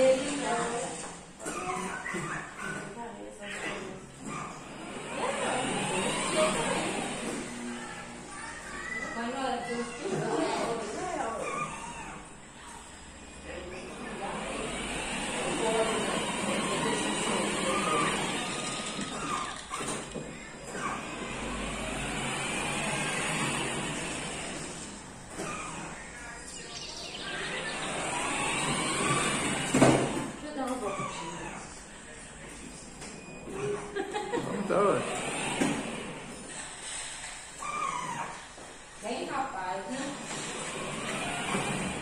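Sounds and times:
indistinct voices talking: 25.8 - 29.7.

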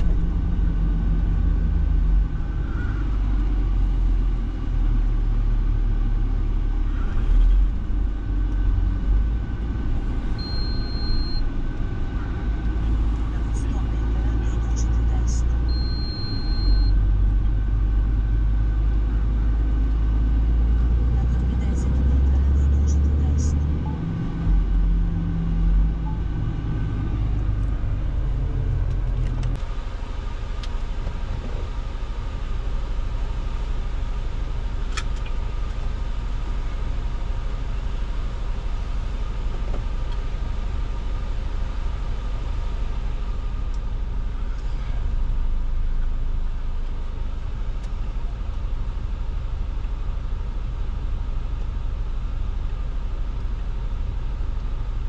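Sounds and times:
truck diesel engine droning: 0.0 - 55.0
short high electronic beeps: 10.4 - 11.4.

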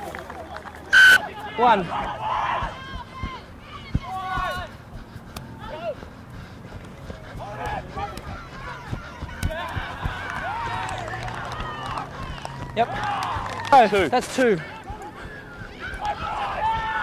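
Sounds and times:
players shouting: 0.5 - 6.2, 7.2 - 17.0.

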